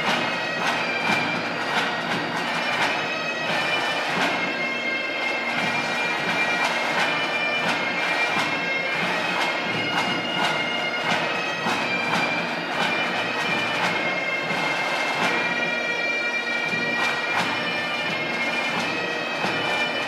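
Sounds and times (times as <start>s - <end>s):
bagpipes playing over drone: 0.0s - 20.0s.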